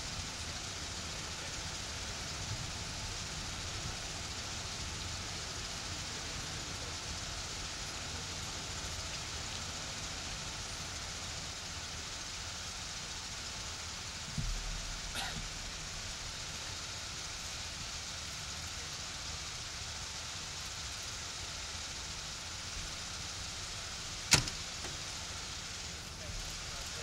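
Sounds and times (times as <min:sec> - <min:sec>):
steady background hiss: 0:00.0 - 0:27.0.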